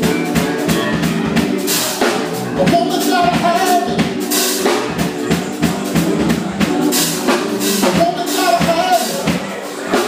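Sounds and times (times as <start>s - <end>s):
live band instrumental: 0.0s - 10.0s.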